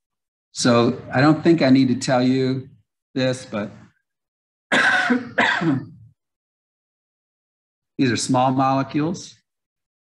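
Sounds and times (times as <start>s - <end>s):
man coughing: 4.7s - 6.0s.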